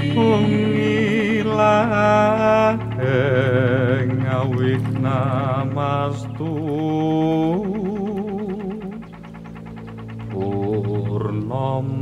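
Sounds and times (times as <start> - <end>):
solo voice chanting with vibrato: 0.0 - 9.2
low drone: 0.0 - 12.0
quick pulsing accompaniment: 0.0 - 12.0.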